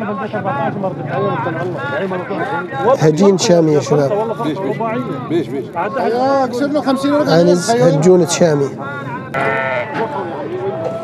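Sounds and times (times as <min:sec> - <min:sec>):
goat bleating: 0:09.4 - 0:10.1.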